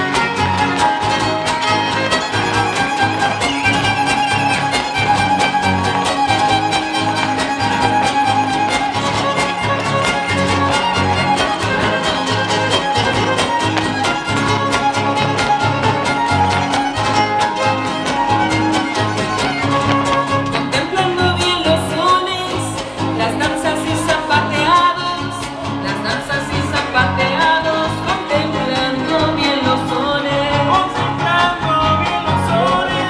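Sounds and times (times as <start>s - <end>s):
guitars strumming rhythmically: 0.0s - 33.0s
violin playing lively melody: 0.0s - 33.0s.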